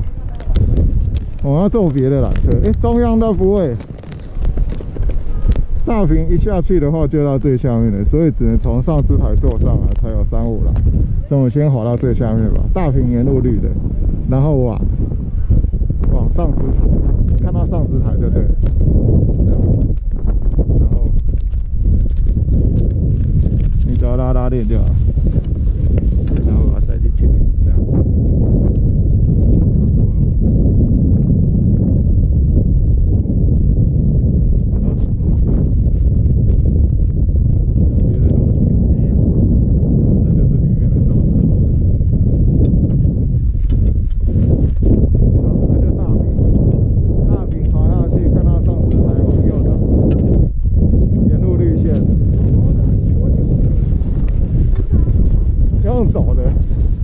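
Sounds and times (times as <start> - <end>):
faint voices: 0.0 - 0.8, 3.3 - 6.4
wind buffeting microphone: 0.0 - 57.0.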